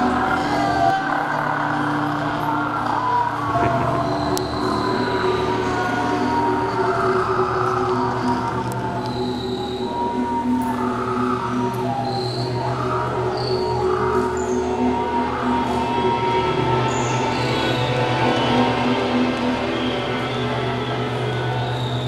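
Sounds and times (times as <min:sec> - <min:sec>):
electric guitars droning: 0:00.0 - 0:22.0
high guitar squeals: 0:00.0 - 0:22.0.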